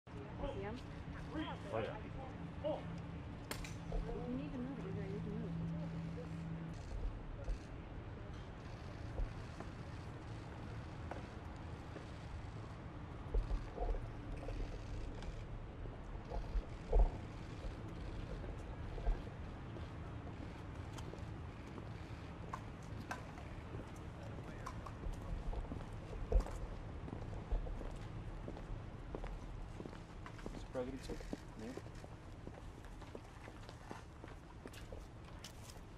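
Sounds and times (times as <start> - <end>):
steady low hum: 0.1 - 35.9
people speaking: 4.0 - 6.3
footsteps on stone walkway: 8.5 - 35.9.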